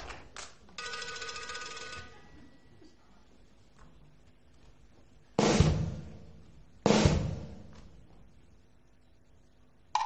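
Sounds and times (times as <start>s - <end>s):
bell ringing in a rapid trill: 0.8s - 2.1s.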